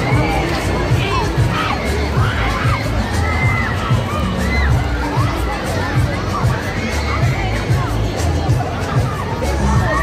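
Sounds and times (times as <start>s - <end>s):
riders screaming and shrieking: 0.0s - 7.8s
fairground music with bass beat: 0.0s - 10.0s.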